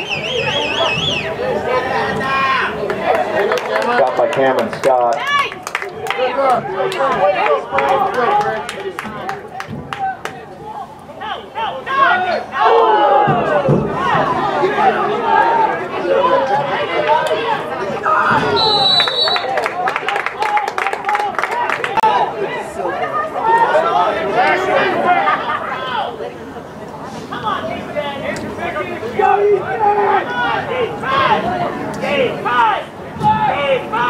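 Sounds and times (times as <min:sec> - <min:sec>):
crowd cheering and shouting: 0:00.0 - 0:26.4, 0:27.3 - 0:34.0
short high whistle blast: 0:18.6 - 0:19.5.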